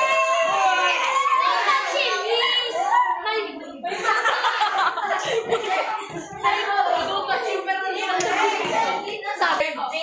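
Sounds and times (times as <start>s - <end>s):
young people talking: 0.0s - 10.0s.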